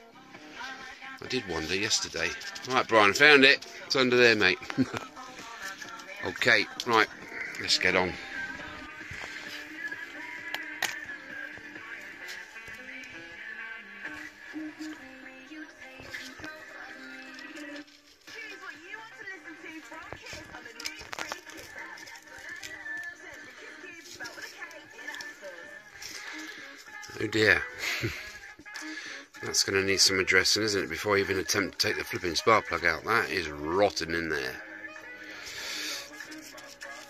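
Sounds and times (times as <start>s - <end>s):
background music with voice: 0.0s - 37.0s.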